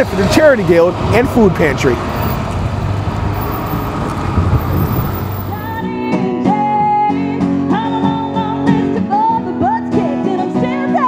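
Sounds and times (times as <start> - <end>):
road traffic rumble: 0.0 - 6.1.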